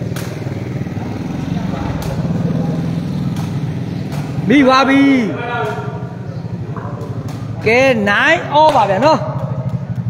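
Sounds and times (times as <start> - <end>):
ball kicked with sharp knocks: 0.0 - 1.0, 1.6 - 10.0
faint voices murmuring: 0.0 - 10.0
pulsing engine hum: 0.0 - 10.0.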